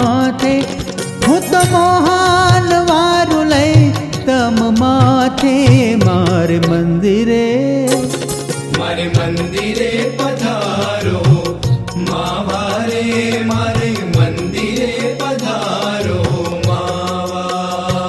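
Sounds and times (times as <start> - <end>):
percussion beat: 0.0 - 6.8, 7.9 - 18.0.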